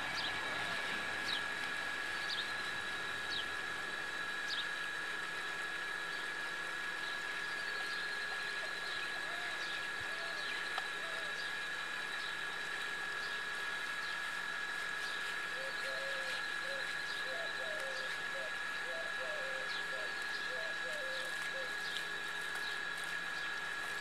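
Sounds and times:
constant high whine: 0.0 - 24.0.

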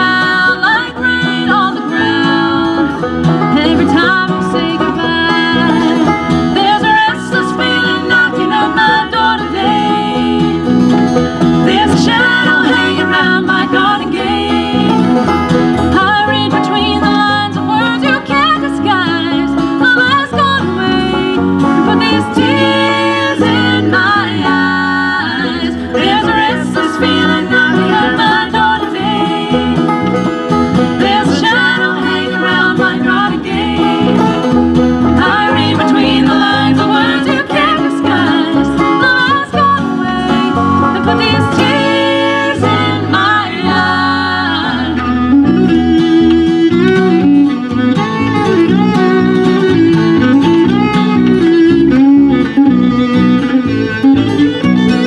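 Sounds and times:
acoustic and electric guitars: 0.0 - 55.0
banjo: 0.0 - 55.0
fiddle: 0.0 - 55.0.

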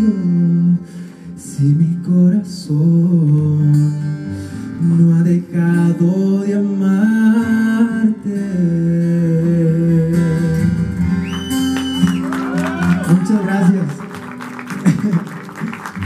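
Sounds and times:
man singing ballad: 0.0 - 11.0
acoustic guitar: 0.0 - 16.0.

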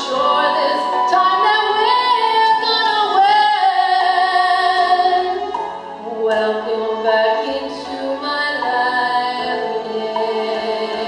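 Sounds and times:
musical accompaniment: 0.0 - 11.0
woman singing soul ballad: 0.0 - 11.0.

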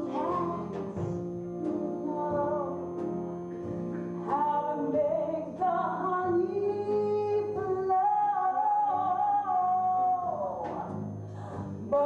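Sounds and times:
woman singing: 0.0 - 2.8, 4.3 - 12.0.

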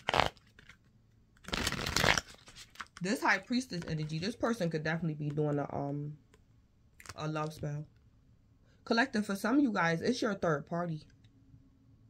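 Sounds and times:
cards being shuffled: 0.0 - 4.4.

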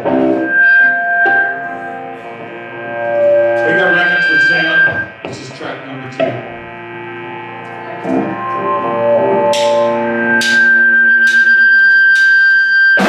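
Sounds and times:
ringing guitar notes: 0.0 - 13.0
rock band playing: 6.2 - 12.3.

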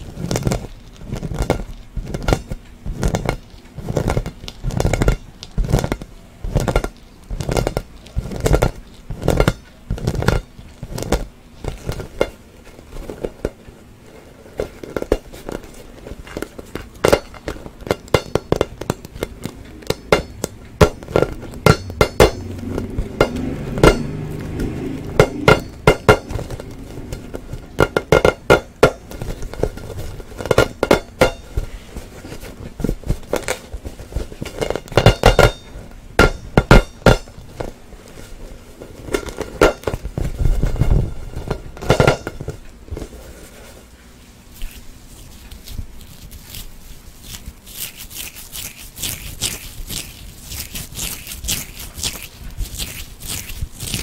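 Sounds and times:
fingers rubbing ball surface: 44.5 - 54.0.

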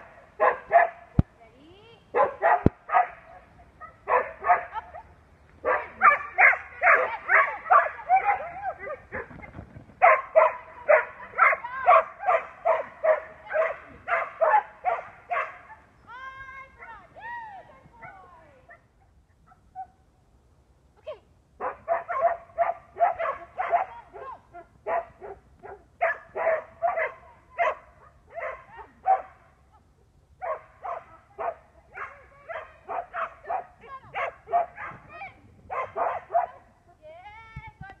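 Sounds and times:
dog barking: 0.4 - 1.0, 2.1 - 9.3, 10.0 - 15.8, 21.6 - 29.4, 30.4 - 35.1, 35.7 - 36.7.

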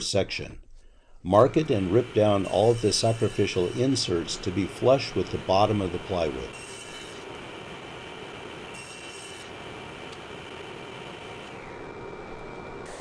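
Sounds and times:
table saw cutting board: 1.4 - 13.0.

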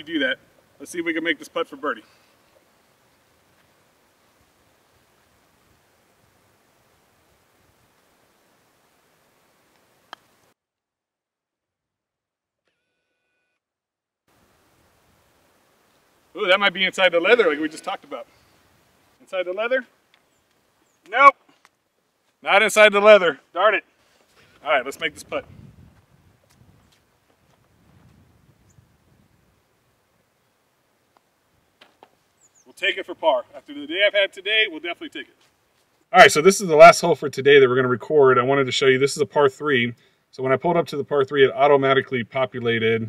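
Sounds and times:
faint steady hiss: 0.0 - 10.6, 14.3 - 43.0
faint clicks: 20.1 - 21.8.

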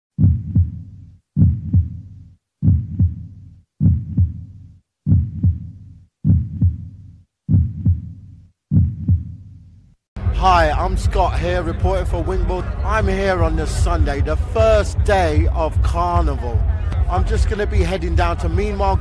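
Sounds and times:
deep heartbeat-like double thumps: 0.1 - 9.5, 12.9 - 19.0.

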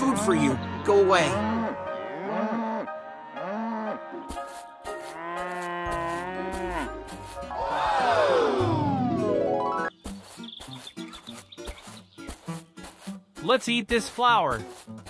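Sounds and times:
cartoon cow mooing: 1.3 - 4.0, 5.1 - 7.0
rising tone: 7.6 - 9.9.

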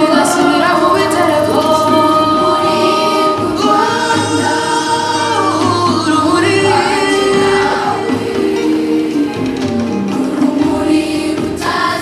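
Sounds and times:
gospel choir singing over music: 0.0 - 12.0.

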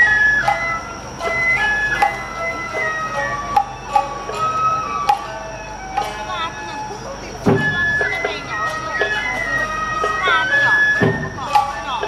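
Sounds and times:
bamboo flutes trilling: 0.0 - 12.0
sharp metallic beats: 0.0 - 12.0
heavy drum stroke: 10.9 - 12.0.

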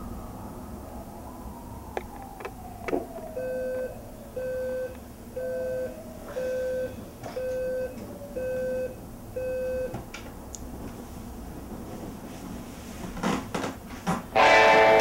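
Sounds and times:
alarm clock beeping: 3.4 - 9.9.

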